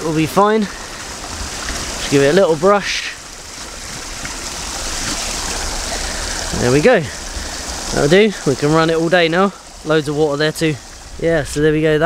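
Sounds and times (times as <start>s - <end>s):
stream water rushing and splashing: 0.0s - 12.0s.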